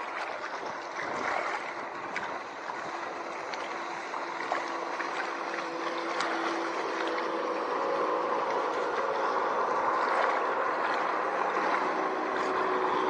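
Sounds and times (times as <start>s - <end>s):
motorboat engine droning: 0.0s - 13.0s
water wash: 0.0s - 13.0s
wind: 0.0s - 13.0s.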